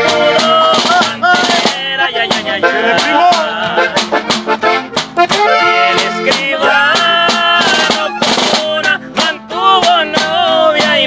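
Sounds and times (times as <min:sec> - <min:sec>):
button accordion melody: 0:00.0 - 0:11.0
snare drum: 0:00.0 - 0:11.0
strummed guitar: 0:00.0 - 0:11.0.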